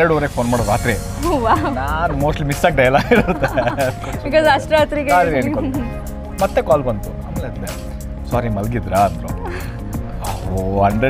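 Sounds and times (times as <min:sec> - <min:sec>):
background music: 0:00.0 - 0:11.0
man talking: 0:02.0 - 0:04.2, 0:05.0 - 0:09.6, 0:10.2 - 0:11.0.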